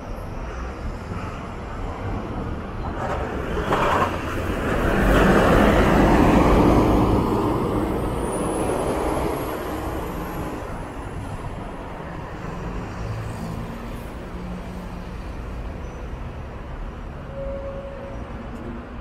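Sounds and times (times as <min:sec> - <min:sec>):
traffic rumble: 0:00.0 - 0:19.0
bus pulling away: 0:00.2 - 0:14.3.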